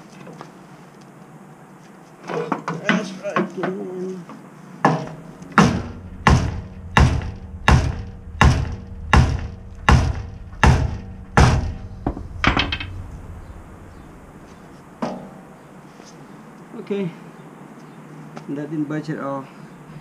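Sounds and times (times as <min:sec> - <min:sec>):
sledgehammer striking metal: 0:04.9 - 0:15.8.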